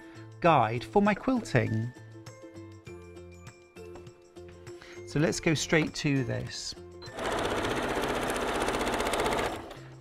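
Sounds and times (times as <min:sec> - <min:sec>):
sewing machine stitching: 0:07.1 - 0:09.8.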